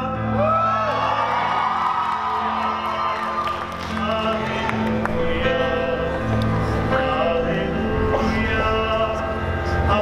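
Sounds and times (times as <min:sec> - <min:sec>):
audience cheering and whooping: 0:00.2 - 0:05.4.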